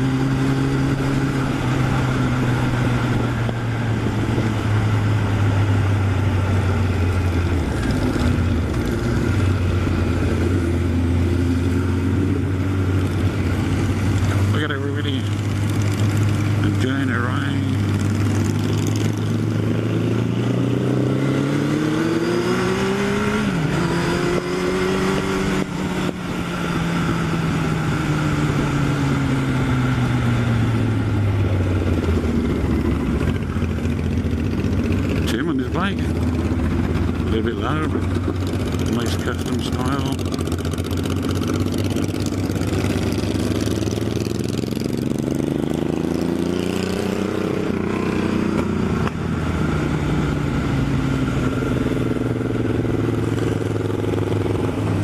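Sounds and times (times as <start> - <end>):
motorcycle engine: 0.0 - 55.0.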